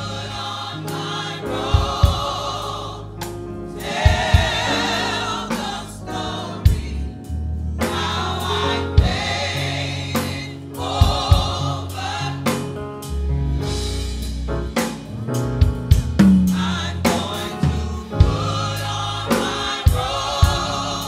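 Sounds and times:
gospel choir singing: 0:00.0 - 0:13.2, 0:16.4 - 0:21.0
band accompaniment: 0:00.0 - 0:21.0
low drum hits: 0:15.9 - 0:18.6.

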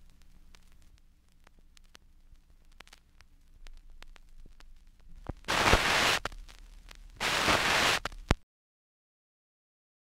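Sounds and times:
hissing static noise: 0:00.0 - 0:08.4.

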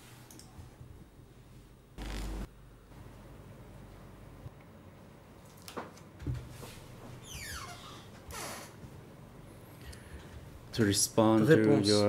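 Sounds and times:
short burst of noise: 0:02.0 - 0:02.5.

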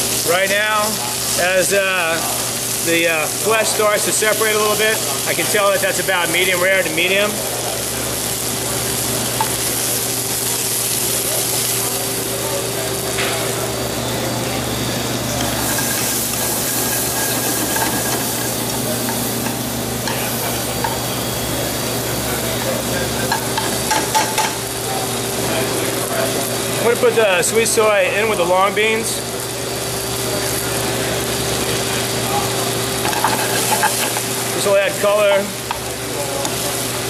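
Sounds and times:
food sizzling in a pan: 0:00.0 - 0:37.0.

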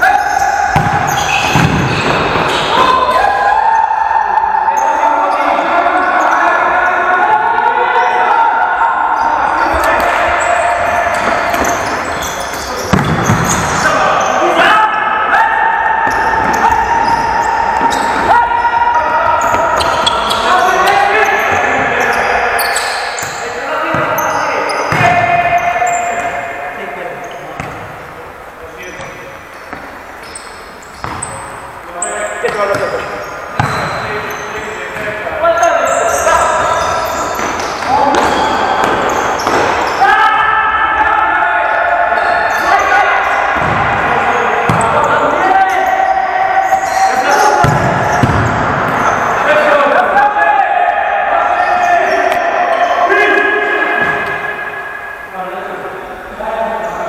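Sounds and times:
shoes squeaking on floor: 0:00.0 - 0:03.2, 0:09.2 - 0:14.6, 0:16.0 - 0:26.4, 0:28.9 - 0:40.1
players shouting: 0:00.0 - 0:57.0.

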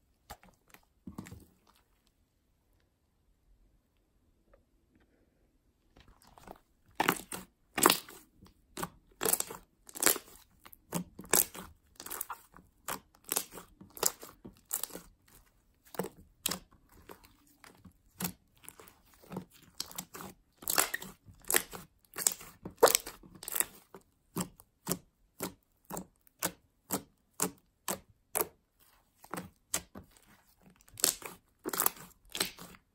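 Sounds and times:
hands squishing slime: 0:00.1 - 0:02.0, 0:06.0 - 0:32.9
slime popping and crackling: 0:06.9 - 0:28.5, 0:30.8 - 0:32.9.

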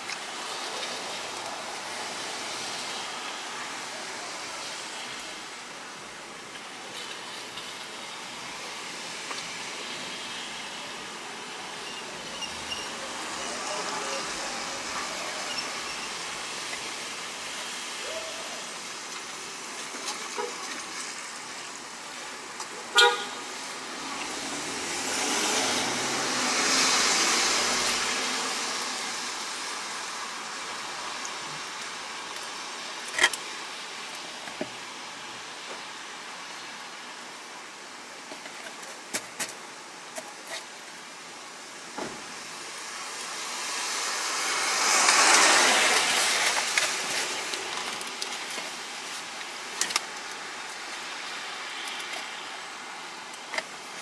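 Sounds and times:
rain on car roof and windows: 0:00.0 - 0:54.0.

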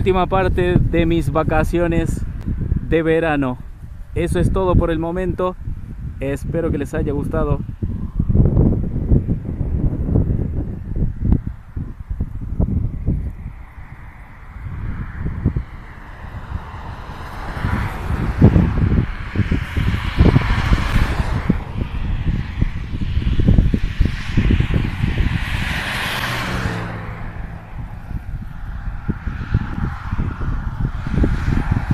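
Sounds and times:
vehicles passing on highway: 0:00.0 - 0:31.9
wind buffeting microphone: 0:00.0 - 0:31.9.

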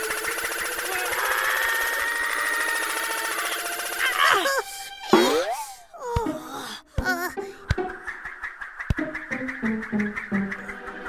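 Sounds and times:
cartoon propeller rattling: 0:00.0 - 0:04.5
squeaky cartoon voices: 0:00.9 - 0:04.6.

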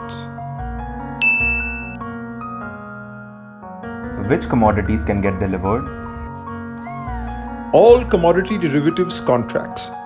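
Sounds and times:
soft piano music: 0:00.0 - 0:10.0.

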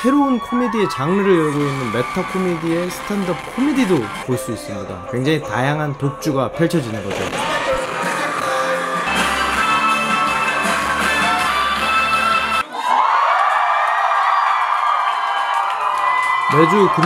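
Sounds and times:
crowd cheering and screaming: 0:00.0 - 0:04.3, 0:07.2 - 0:17.0
live rock band playing: 0:07.1 - 0:12.6.

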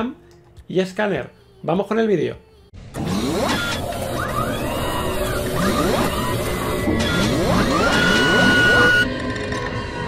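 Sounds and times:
machine whir with pitch sweeps: 0:02.9 - 0:09.2.

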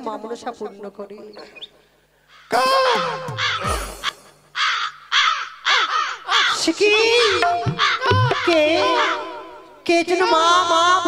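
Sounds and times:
crow cawing: 0:02.2 - 0:09.7.

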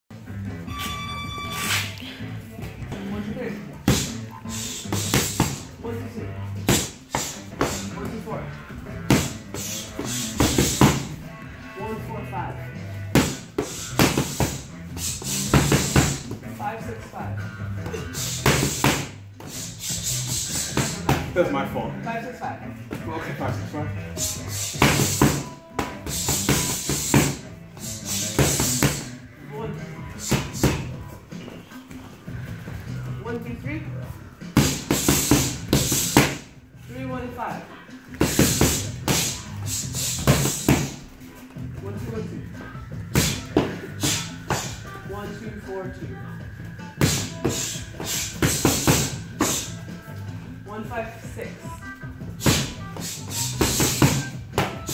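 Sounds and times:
background music with steady beat: 0:00.1 - 0:54.9
boxing gloves smacking punch mitts: 0:04.8 - 0:05.7, 0:06.6 - 0:08.0, 0:09.0 - 0:11.2, 0:13.1 - 0:16.4, 0:18.0 - 0:19.2, 0:24.7 - 0:29.1, 0:30.2 - 0:31.0, 0:34.5 - 0:36.5, 0:38.1 - 0:41.1, 0:43.1 - 0:44.8, 0:47.0 - 0:49.7, 0:52.4 - 0:54.9
music with steady bass: 0:32.2 - 0:54.9.

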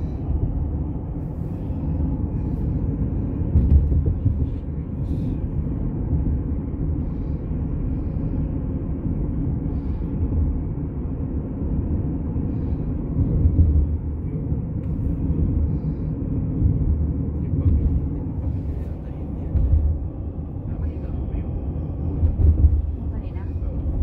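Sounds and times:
car driving rumble from inside: 0:00.0 - 0:24.0.

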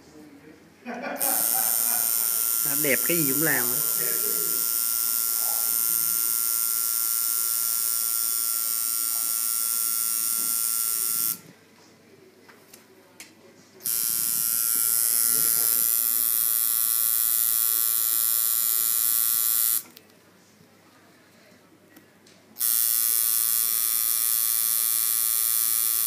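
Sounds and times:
tattoo machine buzzing: 0:01.2 - 0:11.4, 0:13.8 - 0:19.9, 0:22.6 - 0:26.0.

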